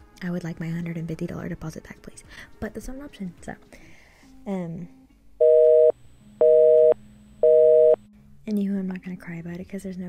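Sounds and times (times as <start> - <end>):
telephone busy signal beeps: 5.4 - 8.0.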